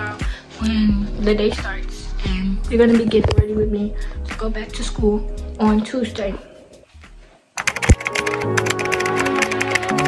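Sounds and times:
intro music: 0.0 - 10.0
keyboard typing clicks: 7.6 - 10.0.

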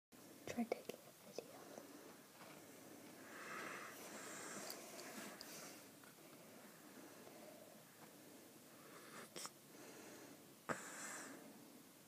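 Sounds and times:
person whispering: 0.4 - 2.0.

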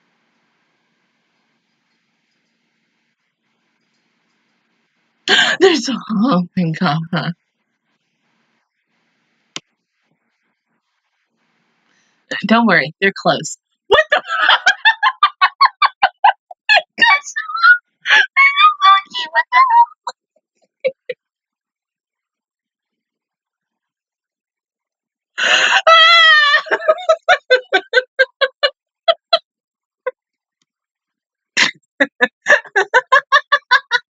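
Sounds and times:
woman laughing hard: 5.3 - 5.8, 13.9 - 17.2, 18.1 - 20.1, 20.9 - 21.1, 25.4 - 29.4, 31.6 - 34.0.

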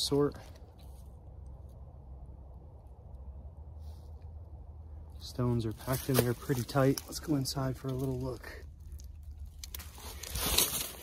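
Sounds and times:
dry leaves rustling and crunching: 5.2 - 11.0.

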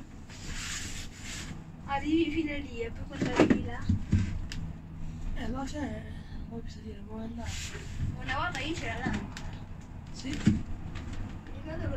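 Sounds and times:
gondola cabin rumble: 1.8 - 11.9.

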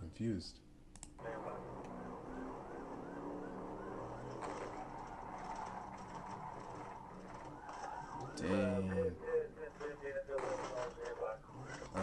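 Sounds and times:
car engine accelerating: 1.2 - 9.1
police siren yelping: 1.2 - 12.0.

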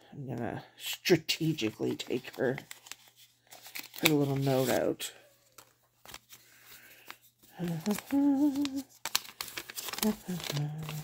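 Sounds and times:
paper rustling: 1.4 - 11.0
small clicks from handling envelope: 2.2 - 4.8, 5.4 - 11.0
woman humming: 7.6 - 8.8, 10.0 - 11.0.

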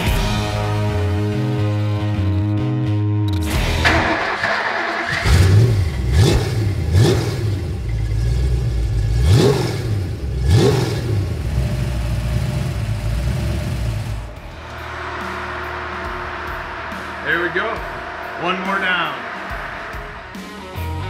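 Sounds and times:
engine idling: 3.6 - 18.6
engine revving: 3.6 - 20.9.

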